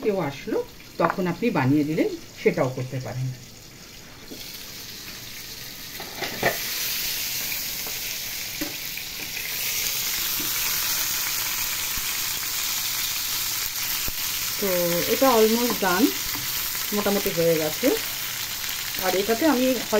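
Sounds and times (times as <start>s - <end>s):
chicken sizzling in oil: 0.0s - 19.9s.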